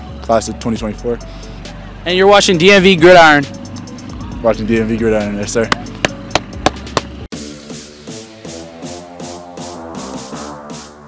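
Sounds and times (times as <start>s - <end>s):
electronic music: 2.1s - 11.0s
sharp knocks: 5.7s - 7.2s.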